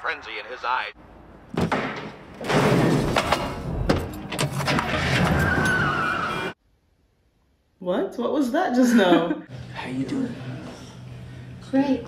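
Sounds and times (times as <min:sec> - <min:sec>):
high squeal: 0:05.2 - 0:06.6.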